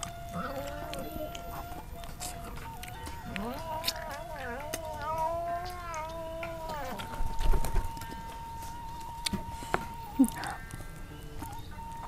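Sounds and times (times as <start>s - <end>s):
cat meowing: 0.0s - 8.6s.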